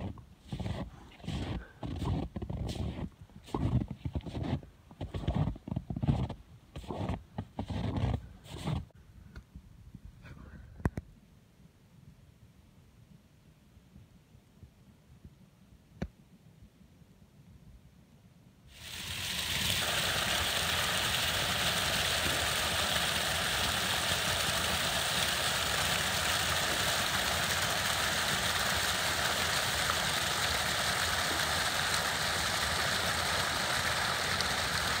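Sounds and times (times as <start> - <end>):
brook water rushing: 18.8 - 35.0.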